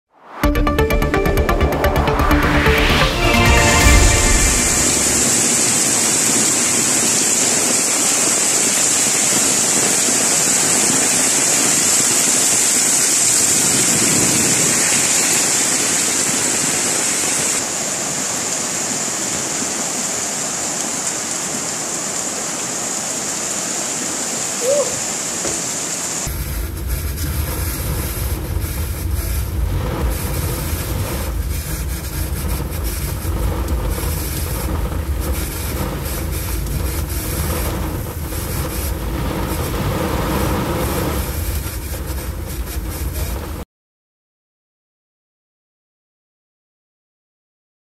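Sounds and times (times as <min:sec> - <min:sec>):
heavy rain: 0:00.9 - 0:43.6
car moving through floodwater: 0:02.5 - 0:43.6
rushing floodwater: 0:03.2 - 0:26.3.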